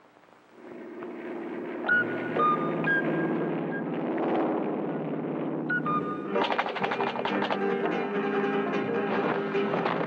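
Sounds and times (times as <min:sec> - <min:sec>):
propeller engines droning: 0:00.0 - 0:10.0.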